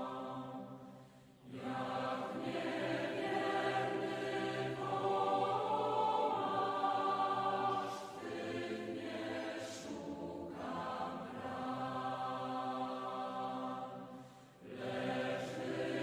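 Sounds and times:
voices singing a hymn: 0:00.0 - 0:16.0.

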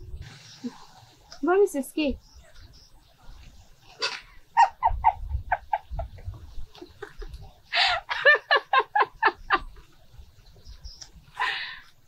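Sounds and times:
woman laughing heartily: 0:04.6 - 0:09.9.

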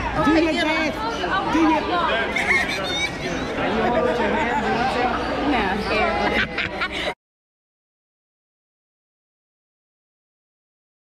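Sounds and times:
people talking over one another: 0:00.0 - 0:07.2.

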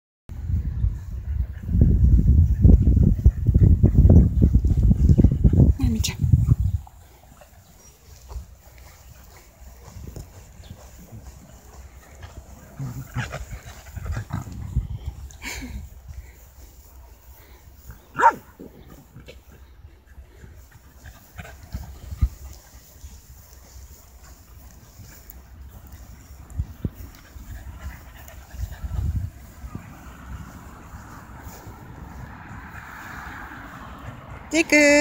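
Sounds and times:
dog barking: 0:18.2 - 0:18.4.

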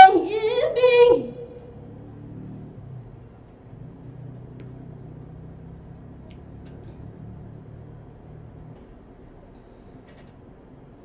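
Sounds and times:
low background rumble and hum: 0:00.0 - 0:11.0
faint clicks: 0:04.6 - 0:04.8, 0:06.2 - 0:07.0.

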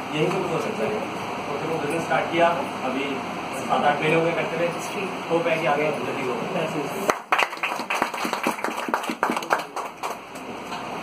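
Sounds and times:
audience applauding: 0:07.1 - 0:10.4.

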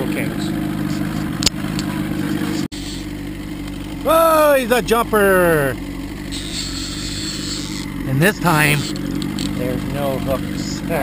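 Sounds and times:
outboard motor running: 0:00.0 - 0:11.0.

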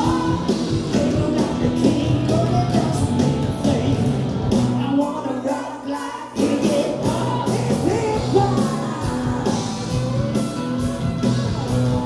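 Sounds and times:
person singing: 0:00.0 - 0:10.1
live rock band playing: 0:00.0 - 0:12.0.

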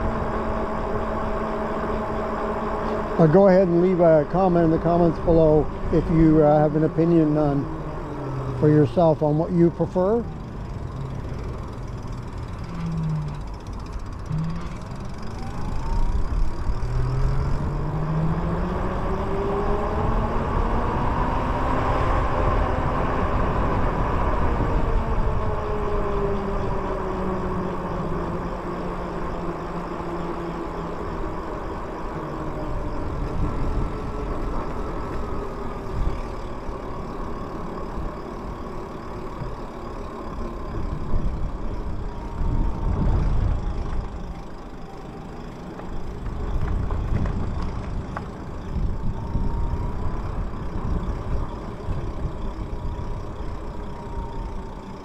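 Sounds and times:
wind: 0:00.0 - 0:55.0
electric motor whining: 0:10.0 - 0:55.0.

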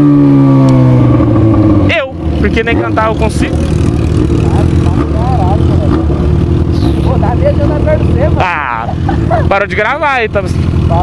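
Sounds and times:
motorcycle engines idling: 0:00.1 - 0:11.0.

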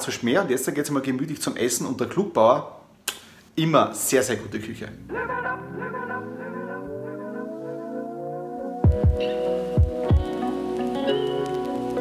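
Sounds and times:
sustained held chords: 0:05.0 - 0:12.0
deep drum beats: 0:08.8 - 0:10.4.

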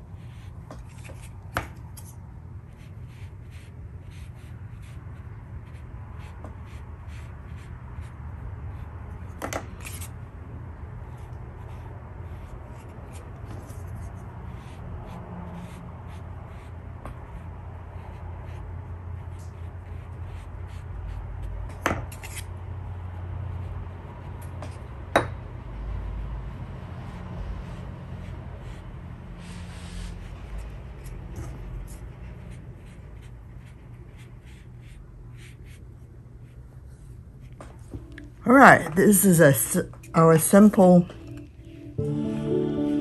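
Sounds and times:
brush rubbing on paper: 0:27.1 - 0:30.8.

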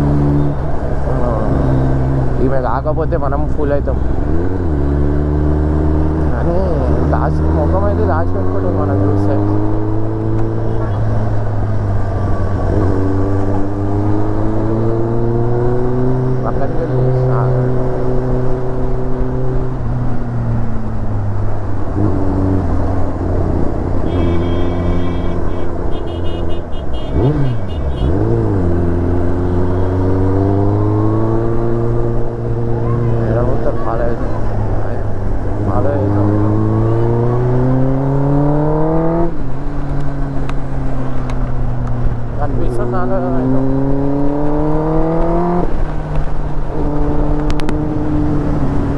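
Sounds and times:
motorcycle engine accelerating: 0:00.0 - 0:25.9, 0:27.1 - 0:48.9.

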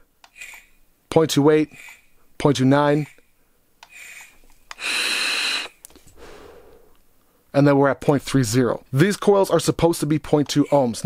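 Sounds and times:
vape draw hiss: 0:03.9 - 0:06.9
exhale of vapour: 0:04.8 - 0:07.0.

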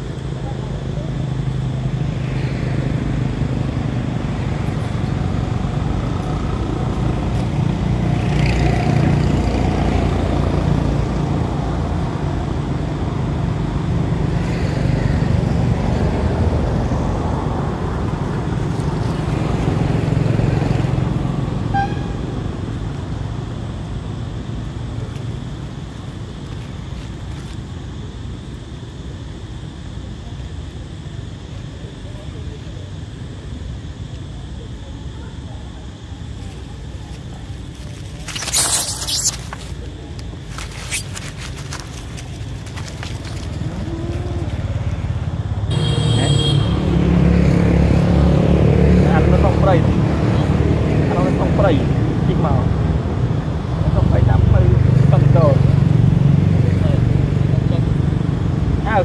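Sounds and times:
traffic rumbling: 0:00.0 - 0:59.0.

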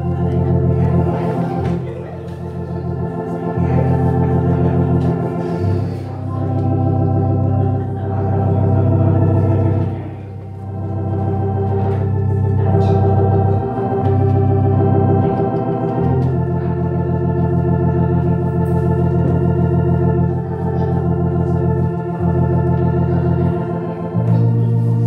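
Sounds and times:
organ playing slow chords: 0:00.0 - 0:25.0.

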